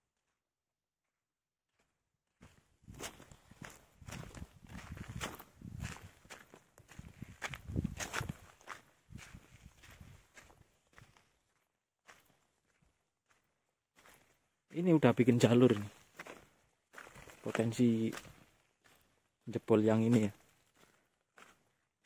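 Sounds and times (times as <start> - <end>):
footsteps crunching on gravel: 2.4 - 13.4, 14.0 - 21.6.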